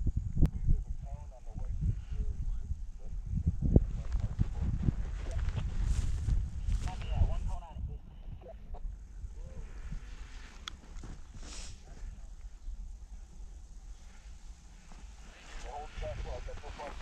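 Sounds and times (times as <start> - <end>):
wind rumble on microphone: 0.0 - 17.0
people talking: 0.5 - 3.2, 3.9 - 5.6, 6.8 - 8.8, 15.2 - 17.0.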